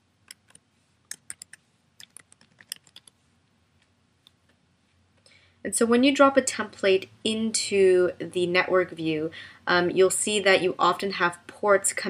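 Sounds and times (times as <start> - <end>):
keyboard typing: 0.3 - 3.2.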